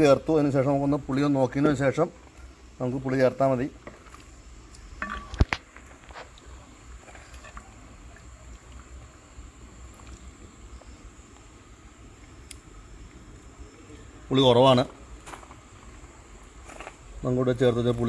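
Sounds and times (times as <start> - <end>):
wooden ladle knocking metal pot: 5.0 - 5.5.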